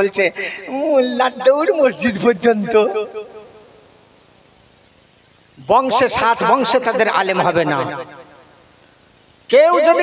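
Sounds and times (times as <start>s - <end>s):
man speaking through loudspeakers: 0.0s - 3.3s, 5.6s - 8.1s, 9.5s - 10.0s
faint background hiss: 0.0s - 10.0s.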